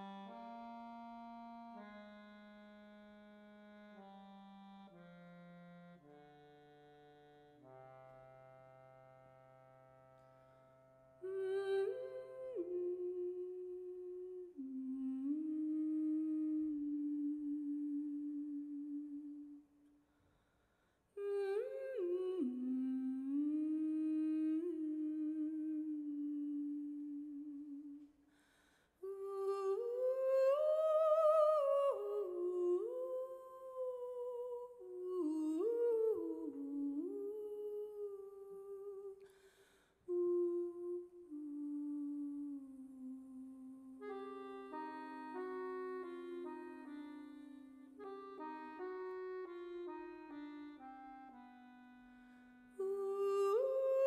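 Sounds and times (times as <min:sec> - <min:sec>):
woman humming wordlessly: 0:11.2 - 0:19.6
woman singing unaccompanied: 0:11.2 - 0:19.7, 0:21.2 - 0:28.1, 0:29.0 - 0:39.3, 0:40.1 - 0:50.9, 0:52.8 - 0:54.0.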